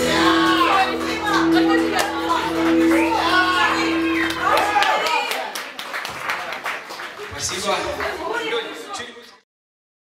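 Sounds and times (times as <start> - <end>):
rock band chord ringing: 0.0 - 5.4
audience voices: 0.0 - 9.4
audience hand clapping: 1.9 - 8.6.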